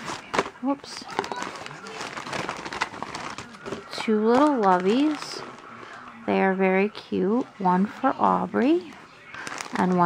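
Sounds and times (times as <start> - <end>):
wrapping paper rustling: 0.0 - 8.1, 8.7 - 10.0.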